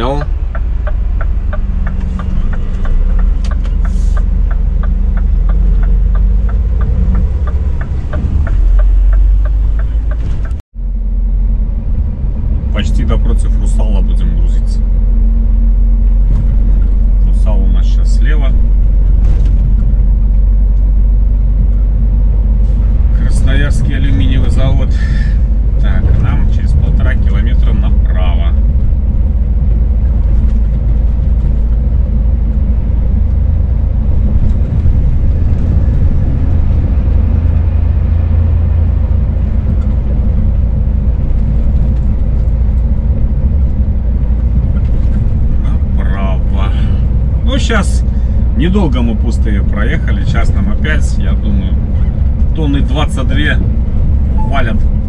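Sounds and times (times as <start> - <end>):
truck engine and road rumble: 0.0 - 55.0.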